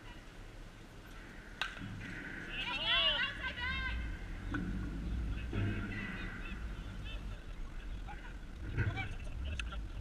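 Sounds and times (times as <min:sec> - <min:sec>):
bat hitting softball: 0:01.6 - 0:02.2.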